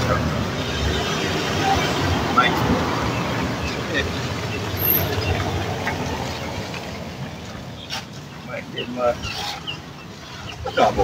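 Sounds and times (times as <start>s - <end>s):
car passing: 0.0s - 10.5s.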